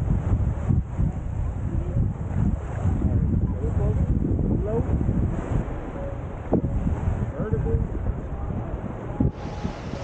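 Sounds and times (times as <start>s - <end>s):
small waves washing onto sand: 0.0s - 10.0s
wind on microphone: 0.0s - 10.0s.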